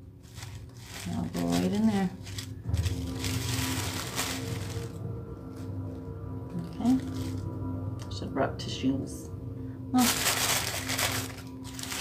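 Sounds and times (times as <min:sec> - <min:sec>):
tissue paper crinkling: 0:00.0 - 0:05.7, 0:06.7 - 0:07.5, 0:10.0 - 0:12.0.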